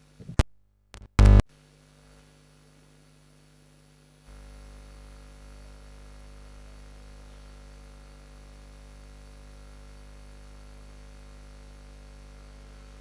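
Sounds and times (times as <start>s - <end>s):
electrical mains hum and hiss: 0.0s - 13.0s.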